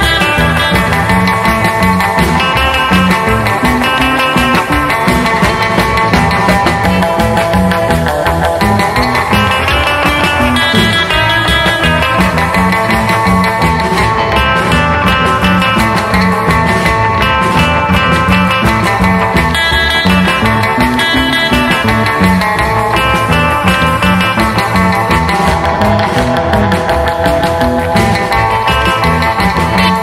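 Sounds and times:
bass guitar: 0.0 - 30.0
drums at a steady beat: 0.0 - 30.0
electric lead guitar melody: 0.0 - 30.0
rhythm guitar: 0.0 - 30.0.

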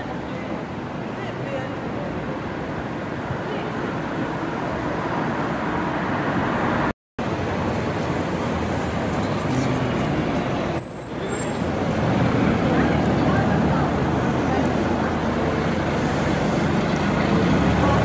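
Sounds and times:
bus passing: 0.0 - 18.0
cars passing: 0.0 - 18.0
faint high squeals: 9.6 - 14.6.

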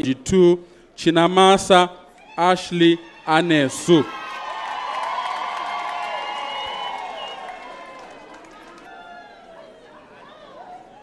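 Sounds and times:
audience cheering: 3.4 - 9.6.

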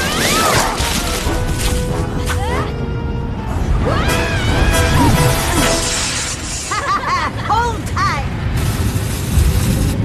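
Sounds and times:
action soundtrack music: 0.0 - 6.8.

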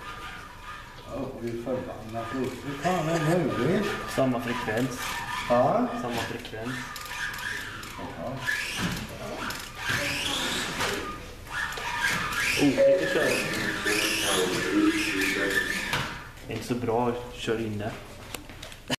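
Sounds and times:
toy car electric motors whining: 0.0 - 16.3
voices talking: 1.0 - 7.0, 12.2 - 17.3.

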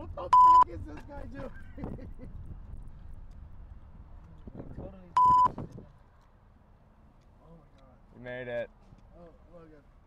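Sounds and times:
electronic beep: 0.4 - 0.6, 5.2 - 5.5.

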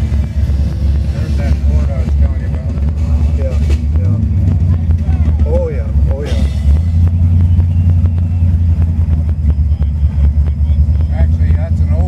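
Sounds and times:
car engine rumbling: 0.0 - 12.0
people talking: 0.0 - 12.0.

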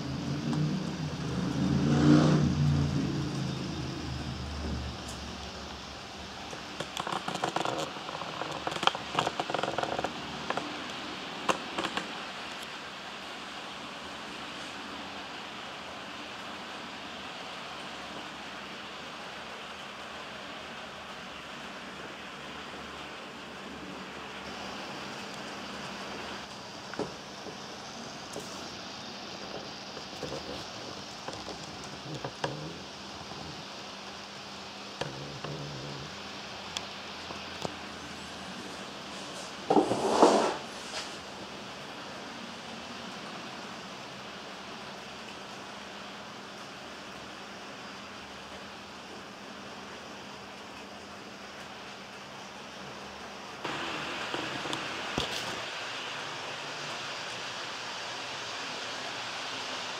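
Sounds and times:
wheels clicking over track: 0.0 - 12.6, 28.3 - 33.8
low rolling noise: 0.0 - 59.9
model train motor and gear hum: 0.0 - 59.9.

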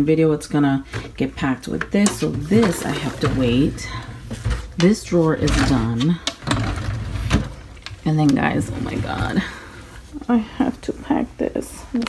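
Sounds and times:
drawer sliding on runners: 2.1 - 7.6.

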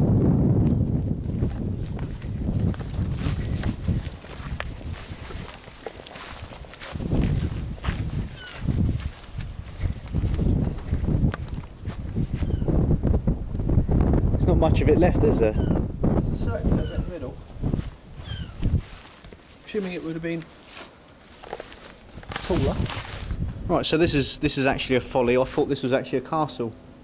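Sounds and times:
wind rumbling on microphone: 0.0 - 19.4, 21.4 - 25.3
footsteps crunching through grass: 0.6 - 12.7, 17.4 - 23.6.

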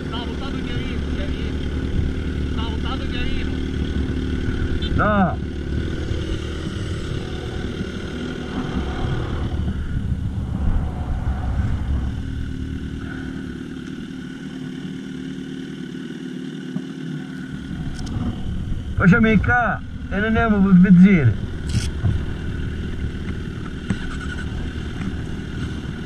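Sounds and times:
deep engine rumble: 0.0 - 26.0
motorcycle engine idling: 0.0 - 26.0.

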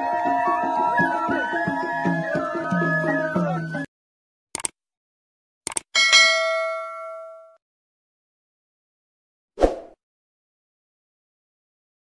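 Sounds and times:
bright bell ding: 6.0 - 7.6.

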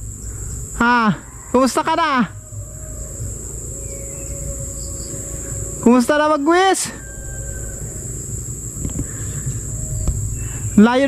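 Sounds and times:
insect chorus droning: 0.0 - 11.0
low uneven rumble: 0.0 - 11.0.

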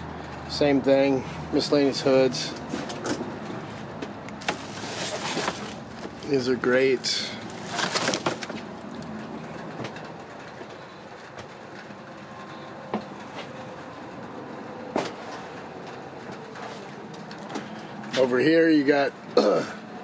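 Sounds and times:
low background hum: 0.0 - 20.0
faint handling noise: 2.5 - 6.4.

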